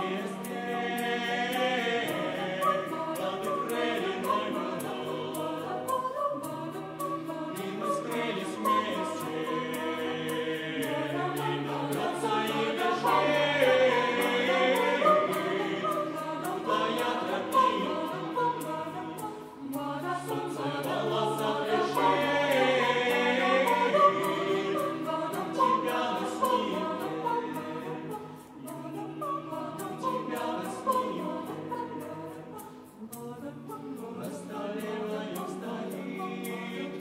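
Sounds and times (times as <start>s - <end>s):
mixed choir singing unaccompanied: 0.0s - 37.0s.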